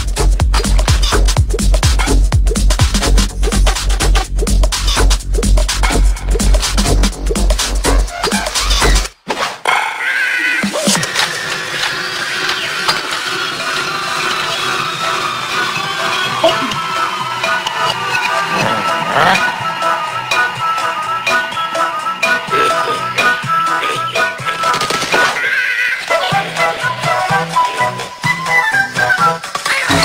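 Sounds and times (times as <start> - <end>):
electronic house music: 13.8 - 25.1.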